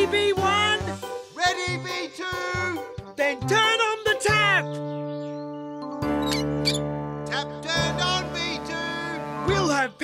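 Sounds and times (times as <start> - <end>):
bright background music: 0.0 - 10.0.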